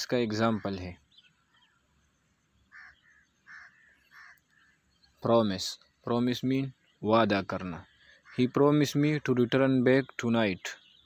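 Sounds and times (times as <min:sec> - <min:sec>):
faint short bird calls: 0:00.0 - 0:06.0, 0:07.6 - 0:09.0.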